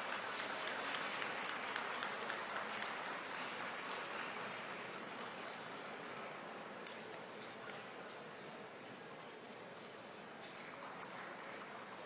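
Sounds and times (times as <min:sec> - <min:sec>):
spectators applauding: 0:00.0 - 0:05.7.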